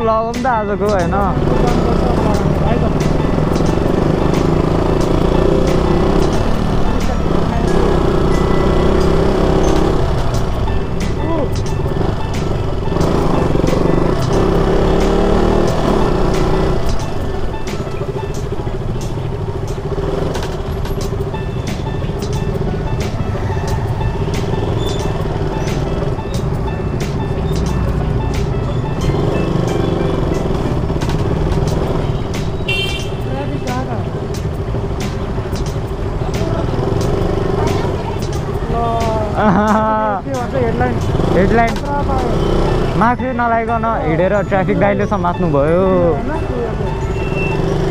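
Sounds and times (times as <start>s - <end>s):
motorbikes and scooters passing: 0.0s - 47.9s
motorcycle engine drone: 0.0s - 47.9s
road and wind noise: 0.0s - 47.9s.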